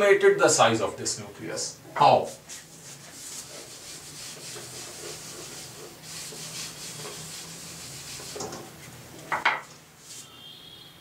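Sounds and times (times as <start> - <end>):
duster wiping whiteboard: 2.2 - 9.2, 9.9 - 10.4.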